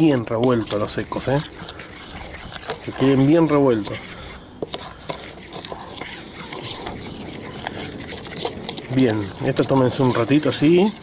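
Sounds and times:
spoon scraping dry mix in bowl: 0.0s - 11.0s.

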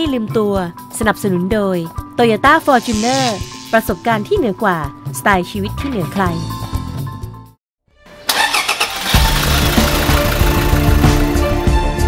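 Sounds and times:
car engine cranking and starting: 8.2s - 11.6s.

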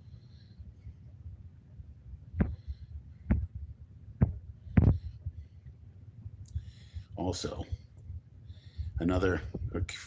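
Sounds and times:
dull thumps on phone microphone: 2.4s - 2.6s, 3.3s - 3.6s, 4.2s - 5.1s.

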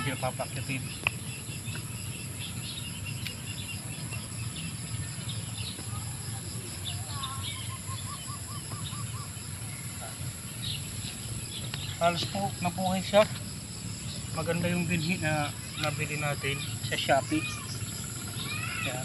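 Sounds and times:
low steady rumble: 0.0s - 18.9s
bird chirps: 0.0s - 19.0s
high insect drone: 0.0s - 19.0s.

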